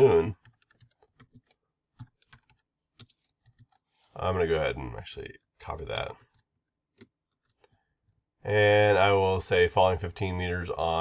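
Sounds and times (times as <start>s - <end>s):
computer keyboard keystrokes: 0.4s - 3.8s.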